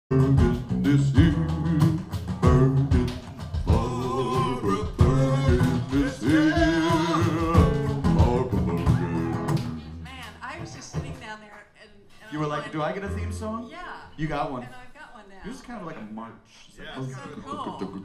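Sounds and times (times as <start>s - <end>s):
person singing: 0.1s - 9.7s
slide guitar: 0.1s - 11.2s, 12.4s - 13.8s
strummed acoustic guitars: 0.1s - 11.4s.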